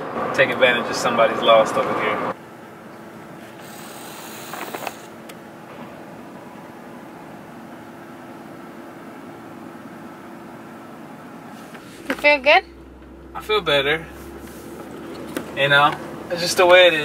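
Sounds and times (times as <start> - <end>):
car cabin hum and hiss: 0.0 - 17.0.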